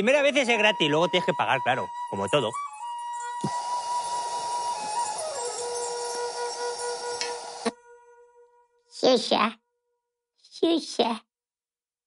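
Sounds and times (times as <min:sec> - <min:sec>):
held musical note: 0:00.9 - 0:08.6
helium hissing from tank nozzle: 0:03.4 - 0:07.7.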